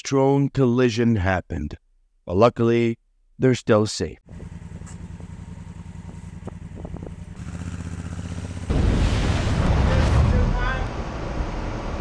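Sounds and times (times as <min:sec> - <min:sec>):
motorcycle engine: 0:04.3 - 0:08.9
wind noise on microphone: 0:06.0 - 0:07.4.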